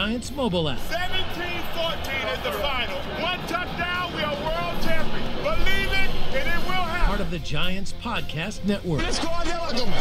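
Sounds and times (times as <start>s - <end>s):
crowd noise: 0.0s - 7.4s
announcer shouting excitedly: 0.8s - 7.3s.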